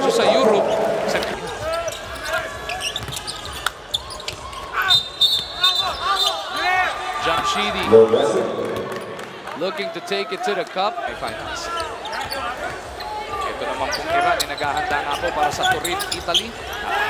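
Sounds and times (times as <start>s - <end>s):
crowd noise echoing: 0.0s - 17.0s
shoe squeaks: 1.6s - 6.8s, 11.7s - 17.0s
basketball bouncing on court: 2.8s - 3.6s.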